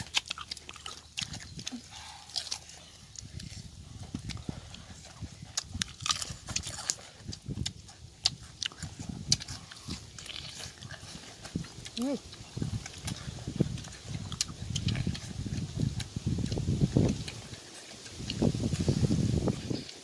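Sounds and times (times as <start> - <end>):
wet mouth clicks: 0.0 - 18.9
chewing and lip-smacking: 0.0 - 20.0.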